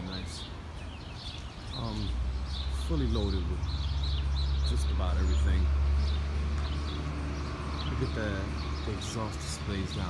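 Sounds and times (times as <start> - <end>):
birds chirping: 0.0 - 10.0
low street rumble: 0.0 - 10.0.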